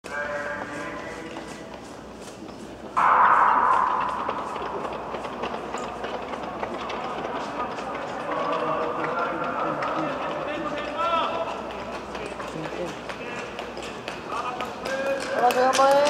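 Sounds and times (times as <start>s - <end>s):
sudden loud burst: 3.0s - 6.6s.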